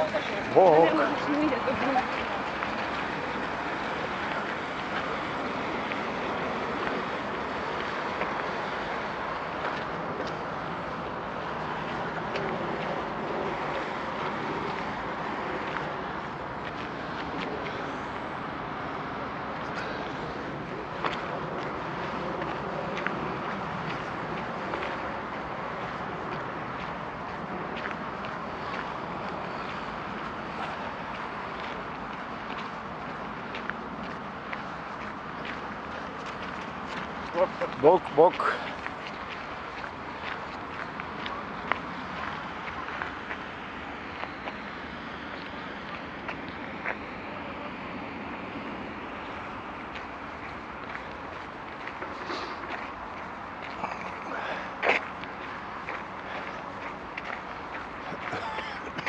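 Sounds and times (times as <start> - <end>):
footsteps on gravel: 19.6 - 47.5, 48.9 - 59.0.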